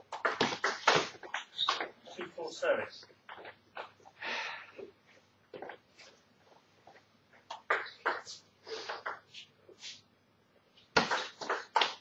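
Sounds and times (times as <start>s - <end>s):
table tennis ball bouncing: 0.1s - 1.9s, 7.5s - 8.3s, 10.9s - 12.0s.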